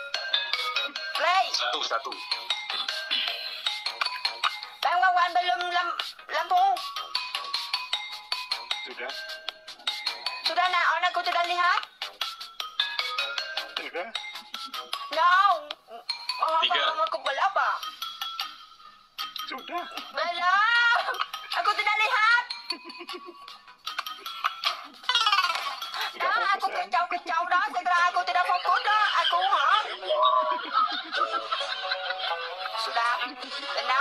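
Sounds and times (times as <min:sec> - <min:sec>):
background music: 0:00.0 - 0:34.0
lively high-pitched voices: 0:19.6 - 0:34.0.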